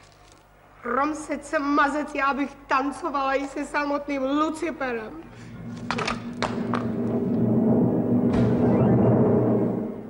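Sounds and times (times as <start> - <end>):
low rolling rumble: 5.3 - 10.0.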